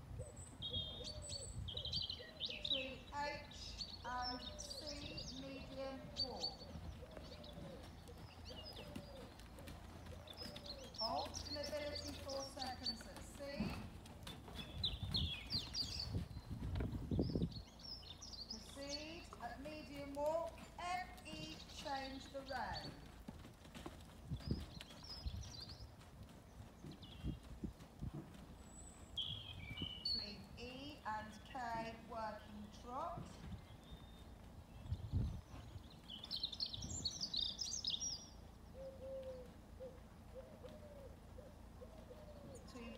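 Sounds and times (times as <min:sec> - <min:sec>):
bird cooing: 0:00.2 - 0:02.7, 0:04.6 - 0:11.3, 0:38.7 - 0:42.9
small birds chirping: 0:00.2 - 0:42.9
horse hoofbeats on gravel: 0:04.2 - 0:38.7.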